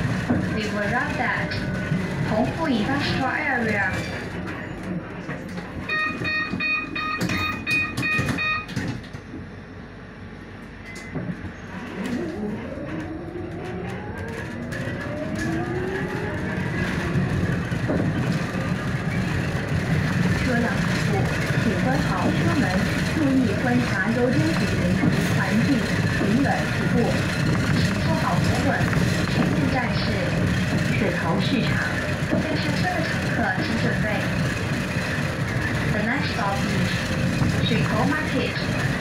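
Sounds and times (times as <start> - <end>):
road noise: 0.0 - 39.0
short electronic beeps: 5.9 - 8.7.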